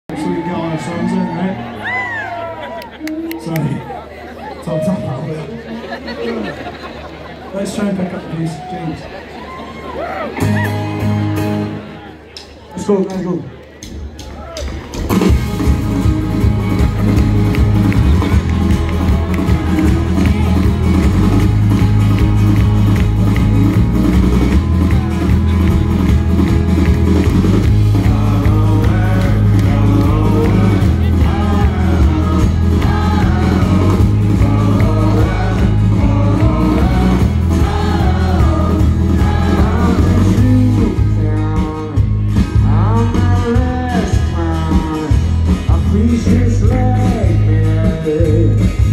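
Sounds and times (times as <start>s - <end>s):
live rock band playing: 0.1s - 5.6s, 10.2s - 12.7s, 13.8s - 48.9s.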